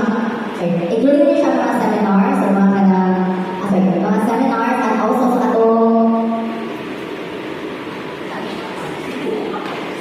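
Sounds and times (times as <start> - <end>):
echoing hall room noise: 0.0 - 10.0.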